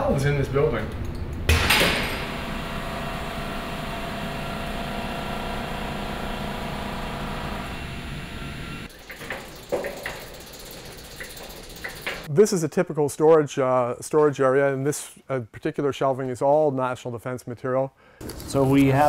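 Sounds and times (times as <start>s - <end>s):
ventilation machinery hum: 0.0s - 12.3s.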